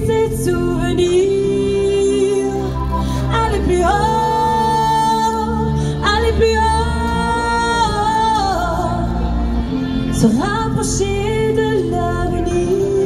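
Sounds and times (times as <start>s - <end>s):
backing track with bass: 0.0s - 13.0s
woman singing into microphone: 0.0s - 13.0s.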